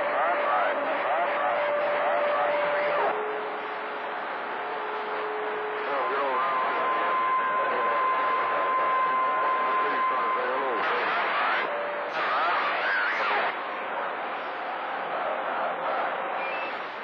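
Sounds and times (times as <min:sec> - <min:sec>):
faint garbled radio voices: 0:00.0 - 0:17.0
radio static hiss: 0:00.0 - 0:17.0
heterodyne whistle: 0:16.4 - 0:17.0.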